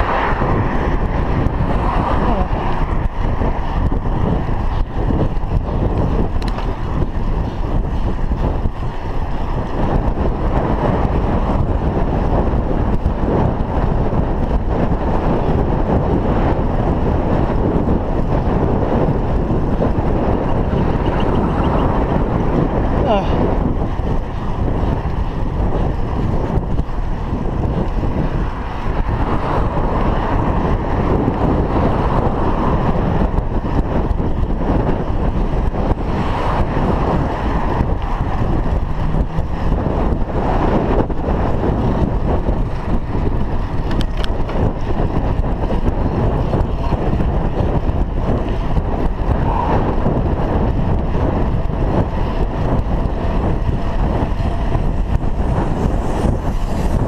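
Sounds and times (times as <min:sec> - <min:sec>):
wind buffeting microphone: 0:00.0 - 0:57.0.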